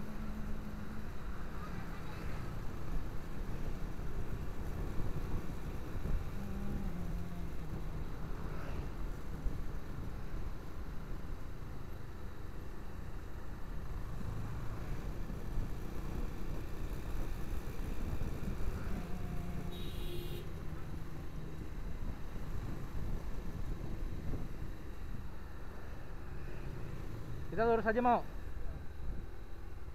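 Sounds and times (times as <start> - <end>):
road and wind noise: 0.0 - 29.9.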